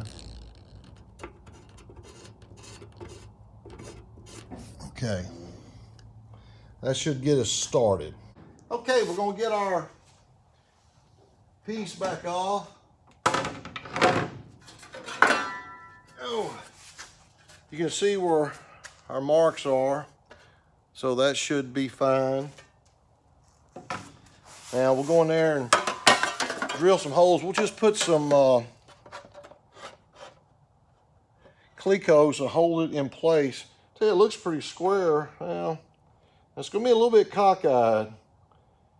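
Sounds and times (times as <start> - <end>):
plastic part ticks and scrapes: 0.4 - 4.5.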